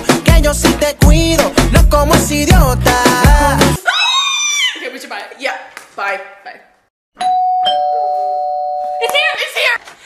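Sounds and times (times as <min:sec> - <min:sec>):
two-tone doorbell chime: 0:07.2 - 0:09.1.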